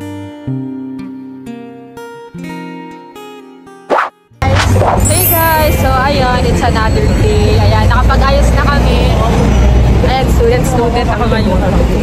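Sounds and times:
woman talking: 4.4s - 9.4s, 10.0s - 12.0s
city street rumble: 4.4s - 12.0s.

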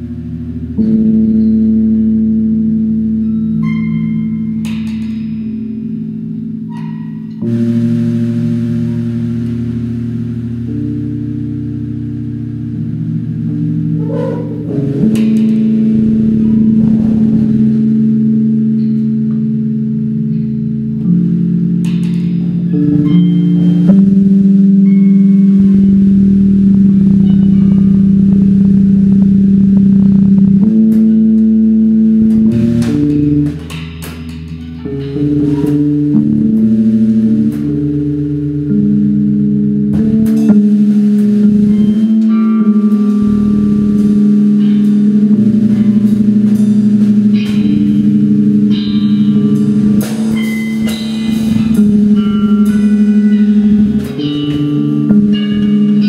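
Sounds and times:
short struck accents: 13.9s - 19.1s, 23.0s - 31.5s.

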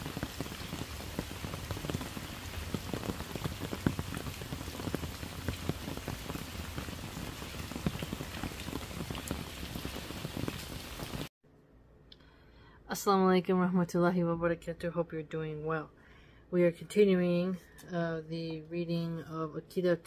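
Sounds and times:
rain falling on wet pavement: 0.0s - 11.3s.

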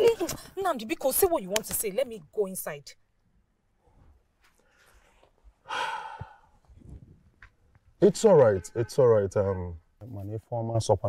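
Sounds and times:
person sighing: 5.7s - 6.6s.

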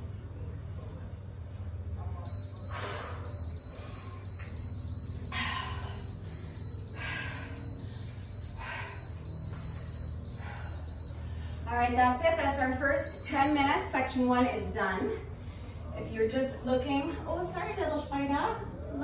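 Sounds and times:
low steady hum: 0.0s - 19.0s
high-pitched buzzer tone: 2.3s - 11.3s, 12.9s - 13.7s.

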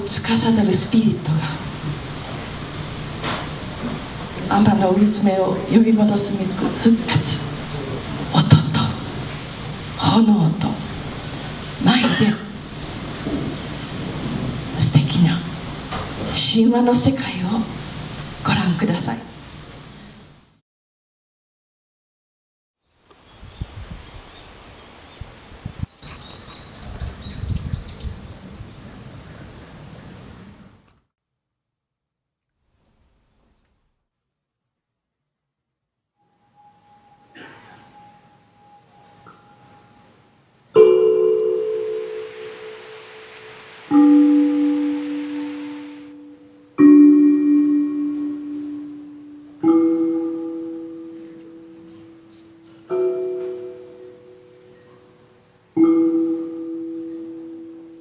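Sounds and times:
low rumbles: 0.0s - 18.5s
steady outdoor hiss: 0.0s - 20.6s, 22.8s - 31.0s, 32.6s - 34.0s, 36.2s - 58.0s
ringing pitched percussion strikes: 36.3s - 58.0s
soft hiss: 36.7s - 49.6s.

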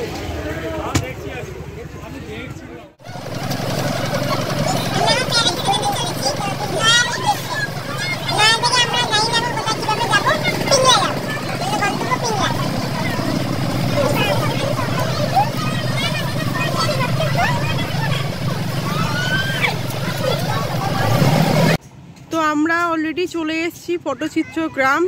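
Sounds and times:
passengers chattering: 0.0s - 21.8s
bus engine and road rumble: 0.0s - 22.3s.

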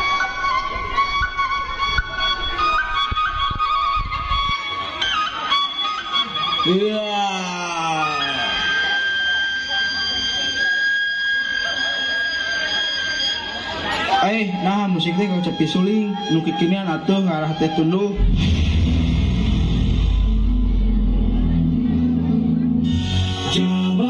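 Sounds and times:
bamboo flute melody: 0.0s - 18.3s
drum beats: 18.2s - 21.4s.

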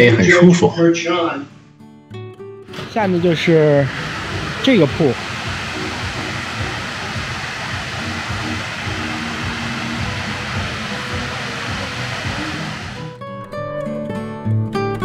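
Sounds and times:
faint music: 2.7s - 13.1s
water rushing down a wall: 2.8s - 13.1s.

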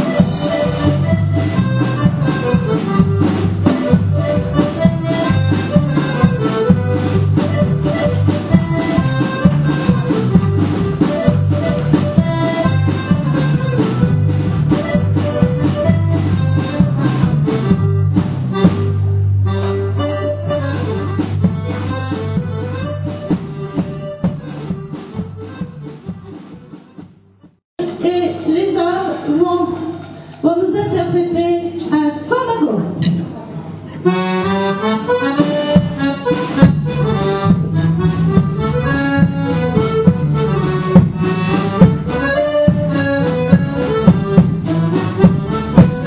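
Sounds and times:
accordion folk dance tune: 0.0s - 32.3s, 33.8s - 46.0s.

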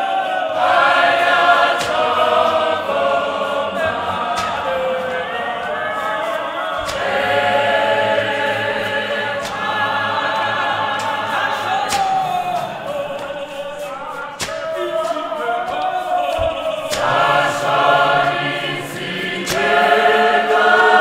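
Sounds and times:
choir singing in harmony: 0.0s - 21.0s.

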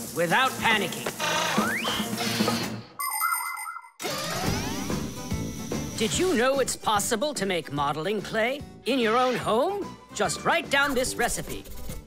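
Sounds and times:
cartoon soundtrack music: 3.0s - 11.7s.

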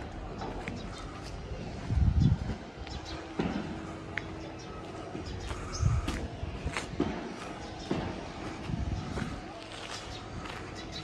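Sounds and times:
low steady street rumble: 0.0s - 11.0s.

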